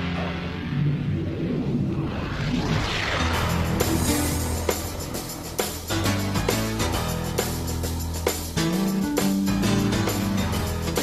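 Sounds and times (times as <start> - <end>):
whooshing swell: 0.2 - 7.4.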